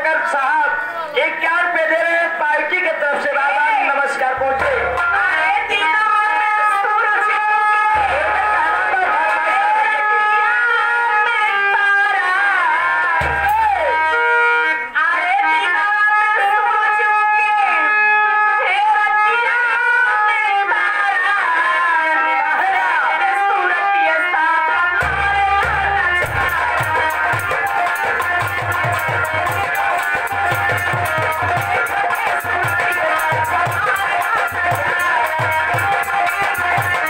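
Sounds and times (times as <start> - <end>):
low drum thumps: 25.0 - 29.6.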